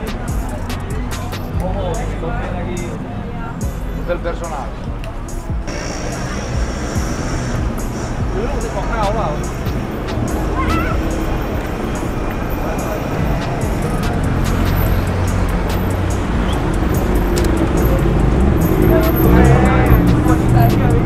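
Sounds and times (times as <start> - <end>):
music playing: 0.0 - 21.0
people talking: 0.0 - 21.0
traffic and vehicle engines: 0.0 - 21.0.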